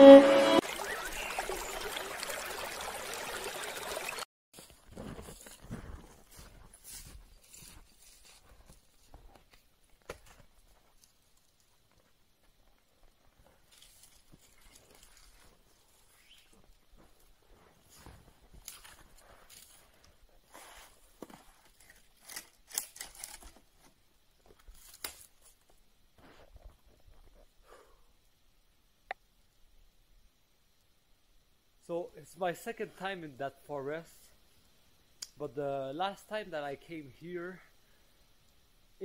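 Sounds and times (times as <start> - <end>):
snowshoes crunching in snow: 4.6 - 9.5, 13.4 - 21.8.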